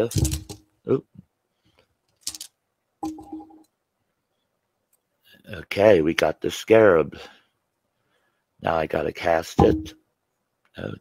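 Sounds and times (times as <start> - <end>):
rune pieces clicking together: 2.1 - 3.2.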